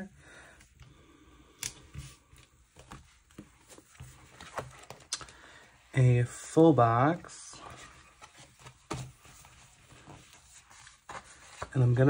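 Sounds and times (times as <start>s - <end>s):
paper rustling: 7.5s - 12.0s.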